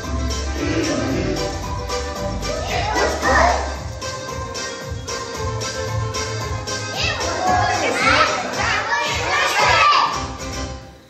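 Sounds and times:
children singing together: 6.9s - 10.2s.

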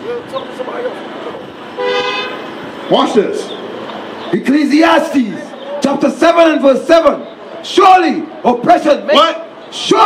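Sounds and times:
street background noise: 0.0s - 10.0s
car horn toot: 1.8s - 2.4s.

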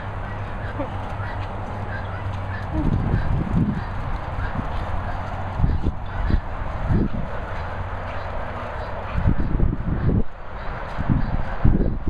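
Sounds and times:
wind rushing: 2.3s - 12.0s.

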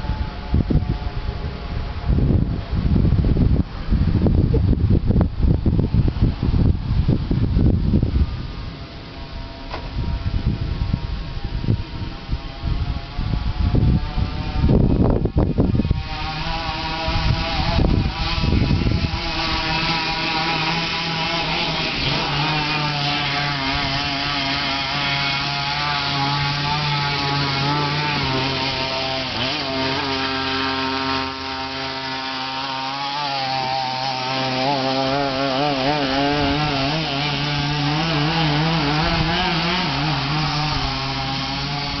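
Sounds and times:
small two-stroke engine revving: 0.0s - 42.0s.

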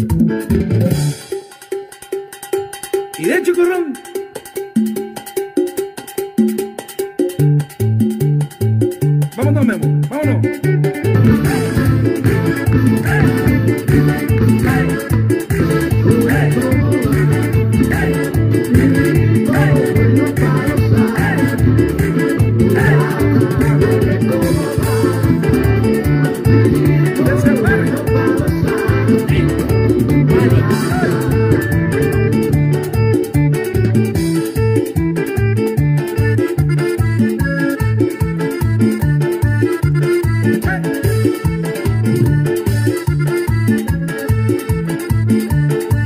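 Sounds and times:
bass line: 0.0s - 1.2s, 7.4s - 46.0s
instrumental salsa music: 0.0s - 46.0s
plucked guitar: 9.3s - 46.0s.

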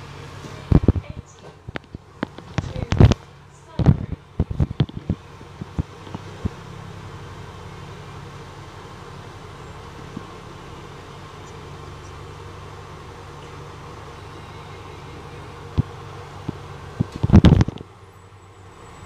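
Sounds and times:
bus engine drone: 0.0s - 19.0s.

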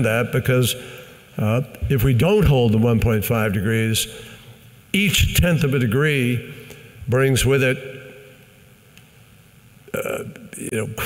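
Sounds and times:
man speaking in a hall: 0.0s - 8.8s, 9.9s - 11.0s.

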